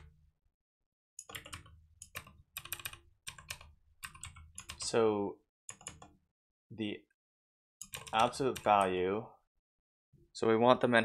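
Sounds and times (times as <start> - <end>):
typing on a keyboard: 1.2 - 4.9, 5.7 - 6.1, 7.8 - 8.9.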